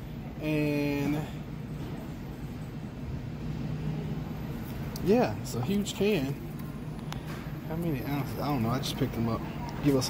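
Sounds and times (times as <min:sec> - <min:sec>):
supermarket background hum: 0:00.0 - 0:10.0.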